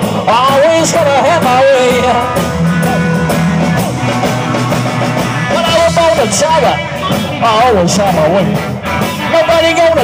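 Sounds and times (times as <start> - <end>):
rockabilly band playing: 0.0 - 10.0.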